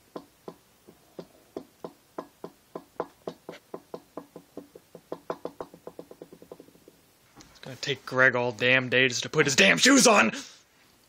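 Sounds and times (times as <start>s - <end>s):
sharp knocks: 0.0s - 7.0s.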